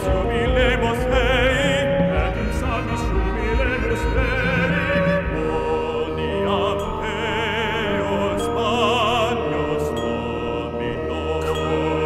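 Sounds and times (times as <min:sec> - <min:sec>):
baritone voices chanting: 0:00.0 - 0:12.0
chamber ensemble with low drone: 0:00.0 - 0:12.0.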